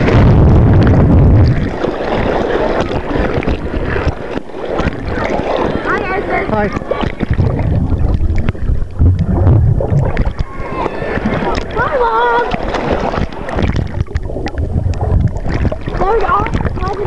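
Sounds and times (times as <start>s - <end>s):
heavy low rumble: 0.0s - 1.8s, 6.2s - 12.7s, 13.6s - 17.0s
water sloshing and splashing: 0.0s - 17.0s.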